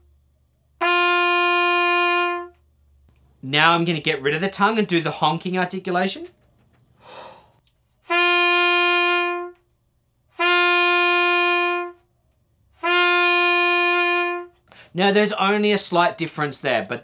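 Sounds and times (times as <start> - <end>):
trumpet long notes: 0.8 - 2.6, 8.0 - 9.7, 10.3 - 12.1, 12.8 - 14.6
short breath: 7.0 - 7.6, 14.6 - 14.9.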